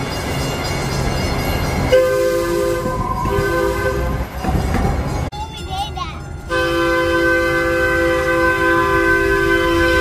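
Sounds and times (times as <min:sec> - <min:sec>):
moving train rumble: 0:00.0 - 0:10.0
train horn chord: 0:02.0 - 0:04.2, 0:06.5 - 0:10.0.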